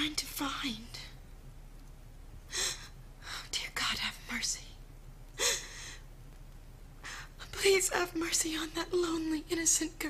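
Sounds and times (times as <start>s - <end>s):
woman sobbing: 5.4s - 6.0s.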